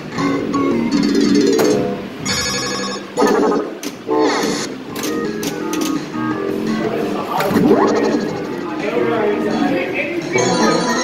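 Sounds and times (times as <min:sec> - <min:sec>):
pinball machine music and effects: 0:00.1 - 0:06.1, 0:07.3 - 0:08.8.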